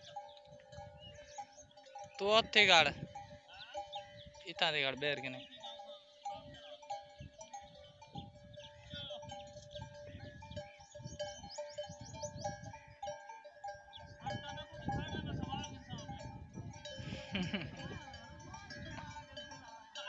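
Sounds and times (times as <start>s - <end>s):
animal bells clanking: 0.0s - 20.0s.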